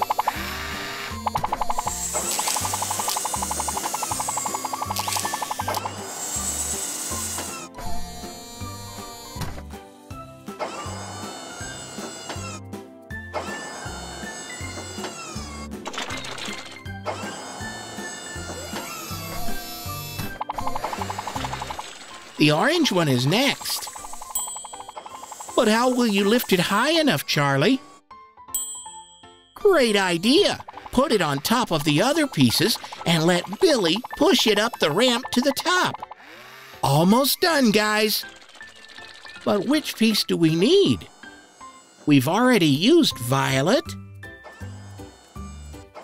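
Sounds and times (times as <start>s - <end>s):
cartoon motor whirring: 0.0s - 9.4s, 10.6s - 12.6s, 13.4s - 26.9s, 30.4s - 37.0s, 37.8s - 39.7s, 40.6s - 42.6s, 44.4s - 46.0s.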